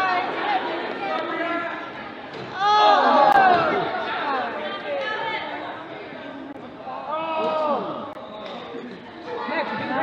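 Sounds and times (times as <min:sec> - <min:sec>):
people calling out and chattering: 0:00.0 - 0:10.0.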